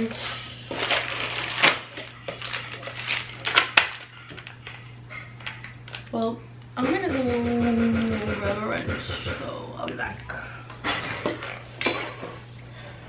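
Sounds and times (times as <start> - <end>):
low steady hum: 0.0 - 13.0
cardboard packaging rustling: 0.3 - 6.1.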